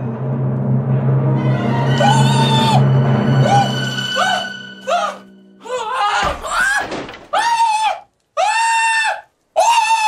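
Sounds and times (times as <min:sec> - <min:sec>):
man screaming in falsetto: 0:07.4 - 0:10.0.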